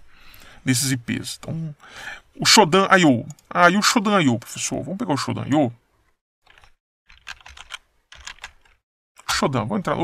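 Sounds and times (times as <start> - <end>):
keyboard keys clicking: 6.5 - 8.8.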